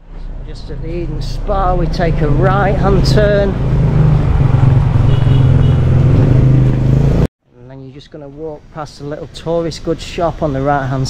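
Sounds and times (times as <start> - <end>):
scooter engine droning: 0.2 - 7.3.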